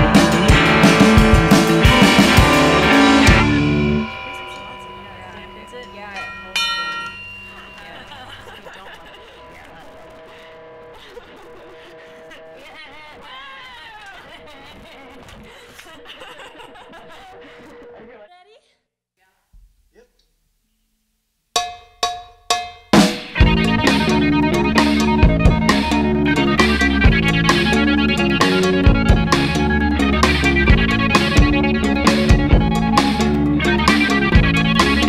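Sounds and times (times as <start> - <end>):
percussion count-in strikes: 0.0 - 10.4, 21.6 - 35.0
band playing: 0.0 - 12.6, 22.9 - 35.0
steady ringing tones: 2.1 - 12.6
bell-like chime: 2.7 - 11.3.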